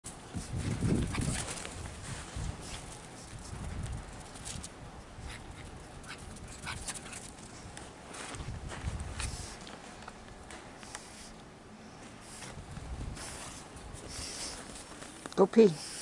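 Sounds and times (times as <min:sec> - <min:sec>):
small dog: 0:00.9 - 0:01.7, 0:05.2 - 0:07.4.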